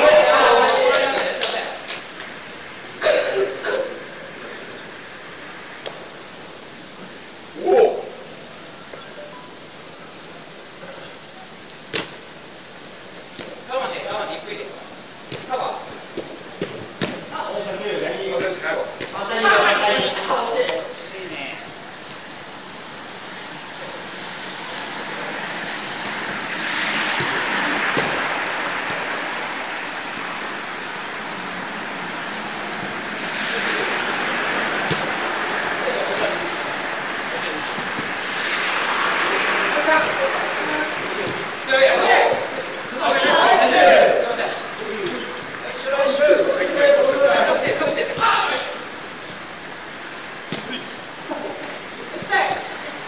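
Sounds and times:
drawn-out shout: 0:00.0 - 0:01.8, 0:07.6 - 0:08.2, 0:41.6 - 0:44.8
players calling out: 0:00.0 - 0:01.9, 0:39.0 - 0:53.0
steady rushing noise: 0:00.0 - 0:53.0.

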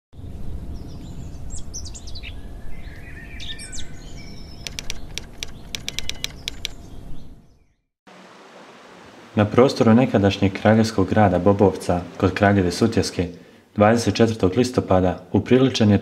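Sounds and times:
birds chirping: 0:00.8 - 0:07.9, 0:08.5 - 0:16.0
sharp clicks: 0:04.6 - 0:06.8.

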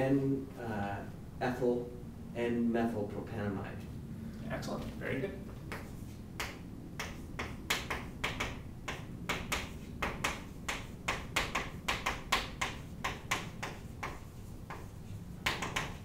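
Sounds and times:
chalk tapping on chalkboard: 0:05.6 - 0:16.0.

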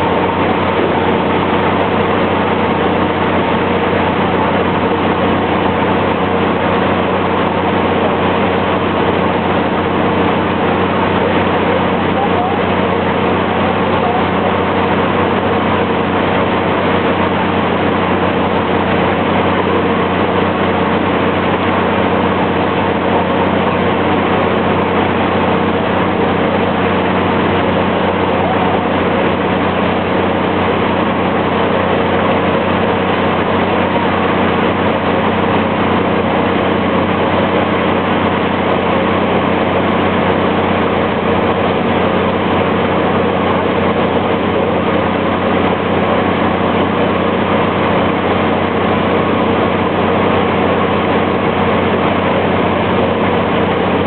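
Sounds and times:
engine humming steadily: 0:00.0 - 0:54.0.

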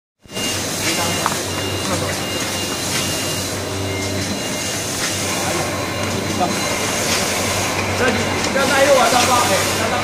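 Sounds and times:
constant high tone: 0:00.3 - 0:09.6
bag filling machine humming: 0:00.3 - 0:10.0.

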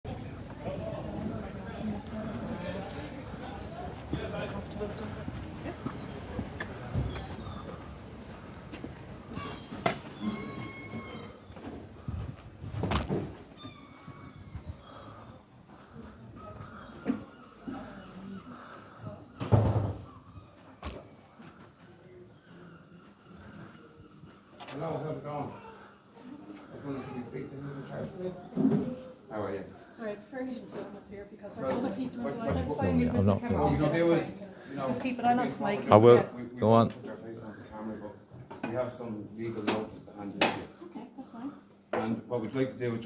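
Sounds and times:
faint indistinct voices: 0:00.1 - 0:43.0.

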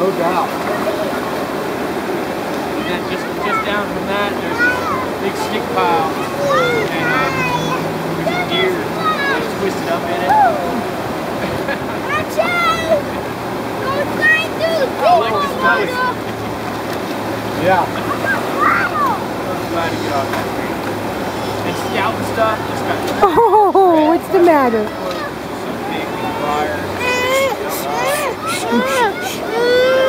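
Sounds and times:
river flowing over rocks: 0:00.0 - 0:30.0
children's voices and squeals: 0:02.7 - 0:10.9, 0:12.0 - 0:13.2, 0:13.8 - 0:16.3, 0:18.0 - 0:19.4, 0:21.2 - 0:22.2, 0:24.9 - 0:30.0.

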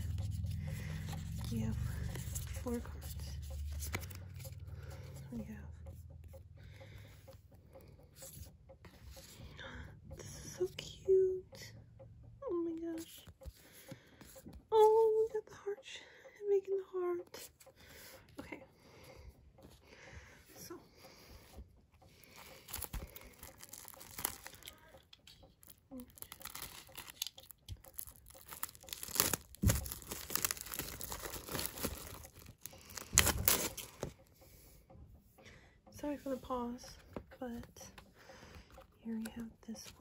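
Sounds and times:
person speaking: 0:00.0 - 0:04.2, 0:35.9 - 0:38.1, 0:38.8 - 0:40.0
plastic wrap crackling: 0:22.4 - 0:34.1.

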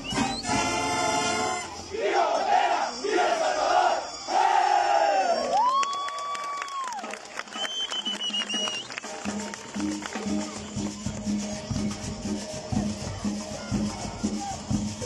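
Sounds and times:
marching band playing: 0:00.0 - 0:02.3, 0:07.0 - 0:15.0
players shouting a chant: 0:00.9 - 0:05.5.

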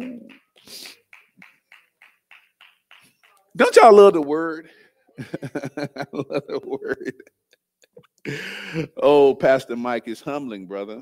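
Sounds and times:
faint hand-clapping: 0:00.0 - 0:03.6.

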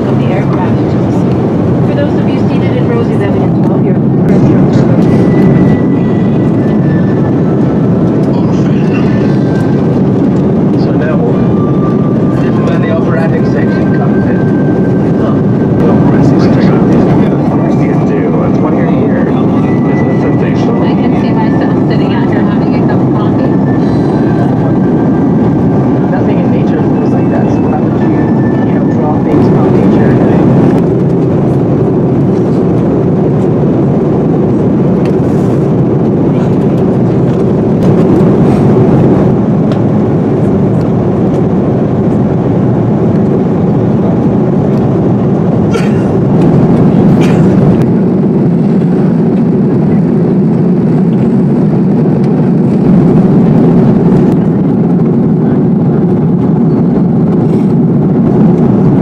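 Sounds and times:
faint passenger voices: 0:00.0 - 0:33.7, 0:34.8 - 0:42.4, 0:43.1 - 0:57.9
airliner cabin engine rumble: 0:00.0 - 0:59.0.

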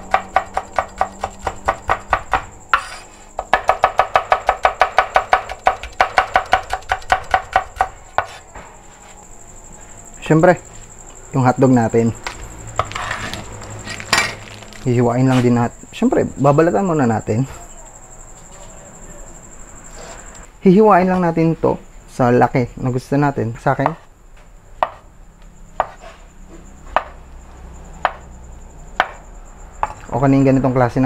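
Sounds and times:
cleaver chopping on wooden board: 0:00.0 - 0:08.4, 0:24.8 - 0:25.0
plastic crinkling and scraping: 0:12.9 - 0:15.0.

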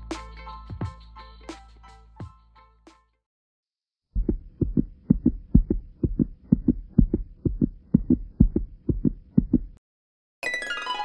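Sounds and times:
fast heartbeat thumps: 0:04.2 - 0:09.8.

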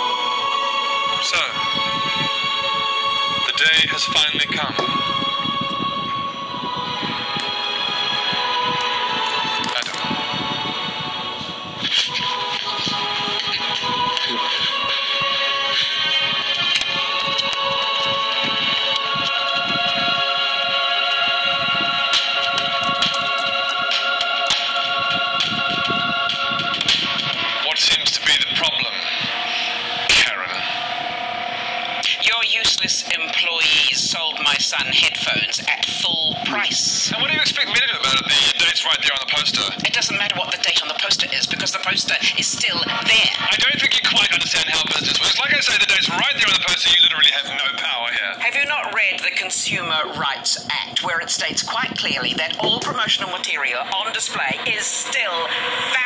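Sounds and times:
held tones background music: 0:00.0 - 0:56.0
low pulsing beat: 0:04.5 - 0:15.3.

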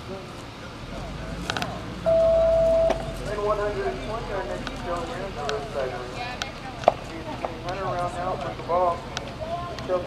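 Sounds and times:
voices: 0:00.0 - 0:10.0
loud electronic beep: 0:02.1 - 0:03.1.

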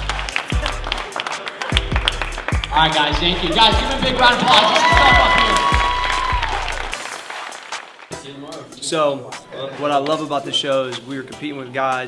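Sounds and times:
audience applauding: 0:00.0 - 0:08.1.

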